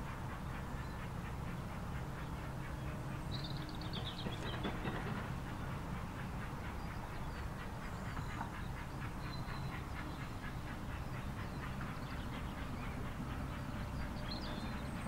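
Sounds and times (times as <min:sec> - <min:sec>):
steam locomotive exhaust beats: 0:00.0 - 0:15.0.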